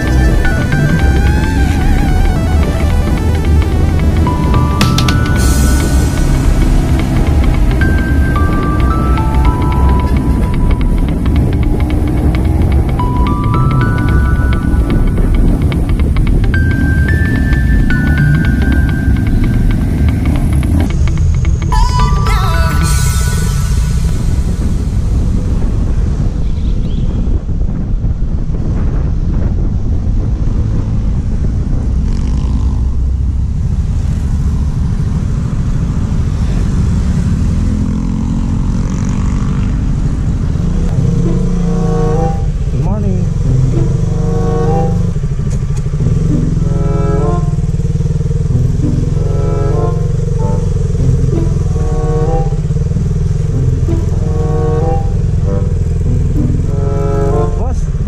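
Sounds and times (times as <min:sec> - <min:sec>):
motorcycle engine running: 0:00.0 - 0:21.8, 0:22.9 - 0:58.0
song with vocals and beat: 0:21.7 - 0:24.8
wind rushing on microphone: 0:23.2 - 0:41.3.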